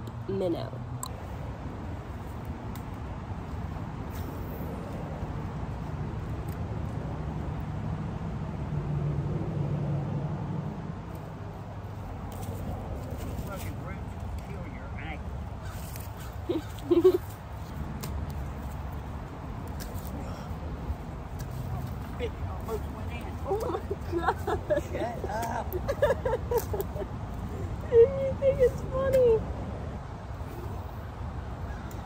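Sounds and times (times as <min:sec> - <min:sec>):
low outdoor background noise: 0:00.0 - 0:32.0.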